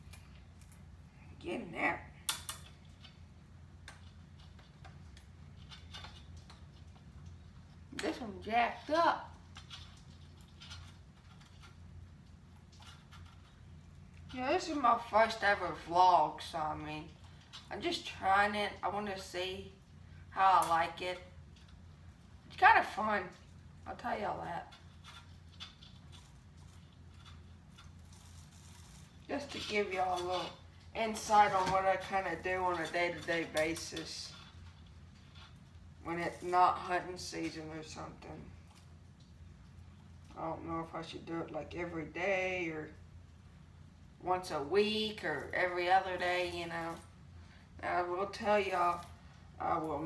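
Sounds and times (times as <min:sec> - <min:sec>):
steady low hum: 0:00.0 - 0:50.0
light clicks and handling noises: 0:23.2 - 0:40.4.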